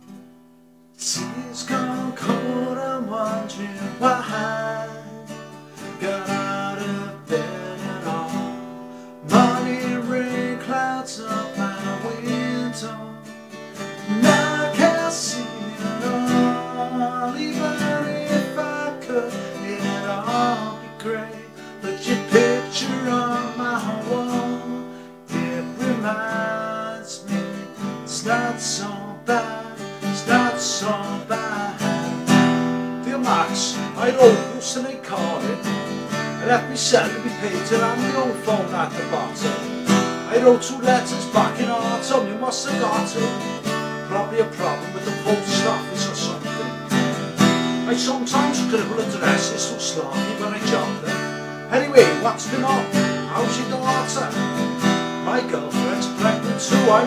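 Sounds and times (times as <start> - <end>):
acoustic guitar strummed and picked: 0.0 - 57.0.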